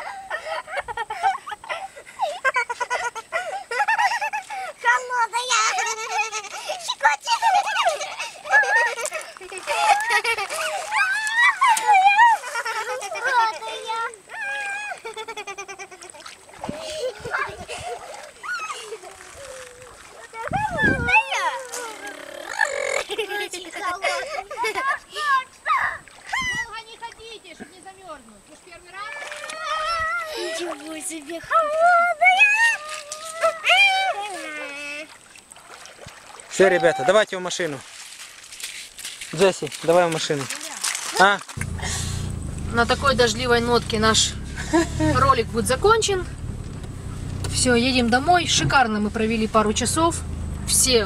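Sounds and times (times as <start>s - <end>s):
light splashing in shallow water: 0.0s - 51.0s
children squealing and shouting: 3.9s - 27.1s, 28.9s - 35.1s, 36.6s - 37.2s.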